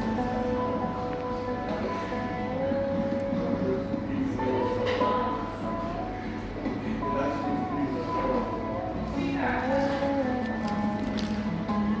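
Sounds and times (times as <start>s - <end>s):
background music with held notes: 0.0s - 12.0s
murmur of voices: 0.0s - 12.0s.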